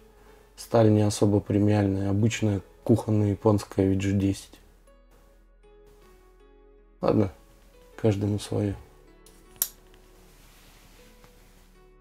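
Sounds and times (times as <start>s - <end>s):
faint background music: 0.0s - 12.0s
knife blade snapping shut: 9.6s - 9.8s.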